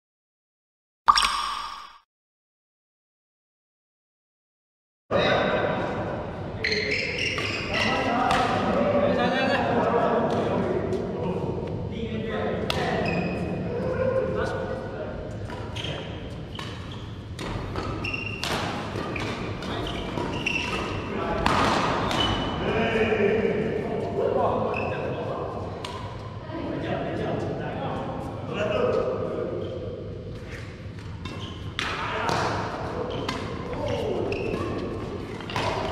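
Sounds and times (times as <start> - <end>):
rackets hitting shuttlecock: 17.4 - 22.4, 35.5 - 35.9.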